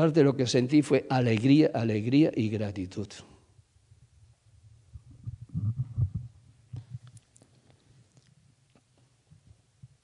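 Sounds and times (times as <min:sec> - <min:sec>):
microphone handling bumps: 0:04.9 - 0:07.2.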